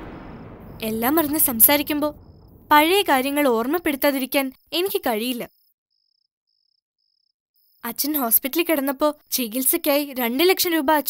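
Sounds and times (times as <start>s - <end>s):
woman speaking: 0.8s - 2.1s.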